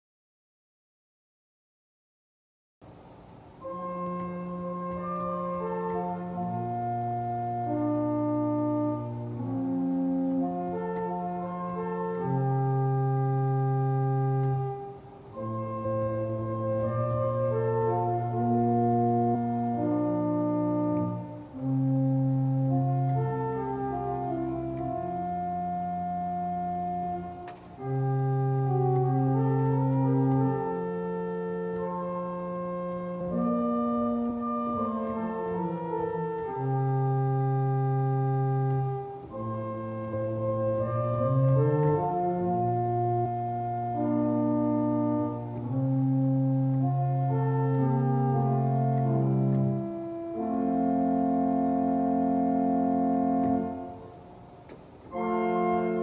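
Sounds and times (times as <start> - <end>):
organ sustained chord: 3.5 - 56.0.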